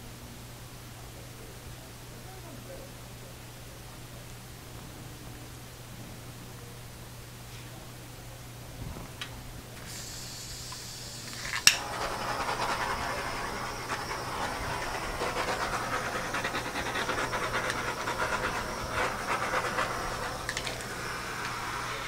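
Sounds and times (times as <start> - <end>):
paint swishing on canvas: 11.8 - 22.0.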